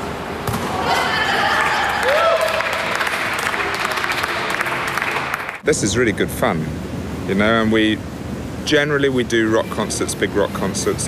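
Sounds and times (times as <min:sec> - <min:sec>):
voices cheering: 0:00.7 - 0:05.4
audience applauding: 0:01.6 - 0:05.6.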